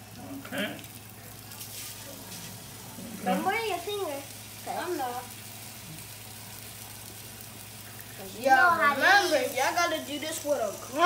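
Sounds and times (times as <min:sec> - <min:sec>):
hot dogs sizzling on griddle: 0:00.0 - 0:11.0.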